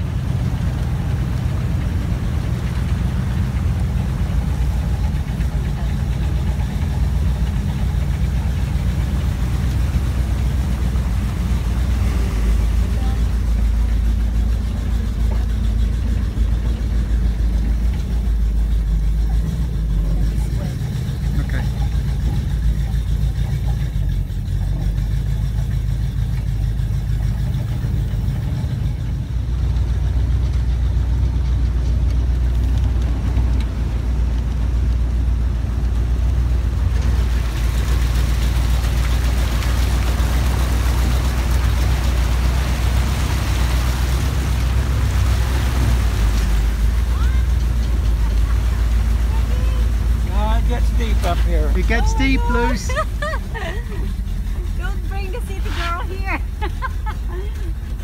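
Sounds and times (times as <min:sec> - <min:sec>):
buggy engine low drone: 0:00.0 - 0:58.0.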